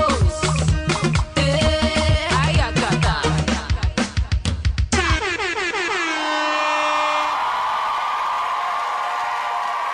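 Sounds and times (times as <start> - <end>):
air horn sound effect: 5.8 - 7.4
audience cheering and screaming: 6.2 - 9.9.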